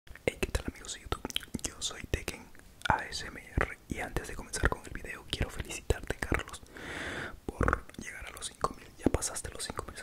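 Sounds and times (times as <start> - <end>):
mouth clicks: 0.2 - 1.7
man whispering: 0.2 - 6.7, 7.4 - 10.0.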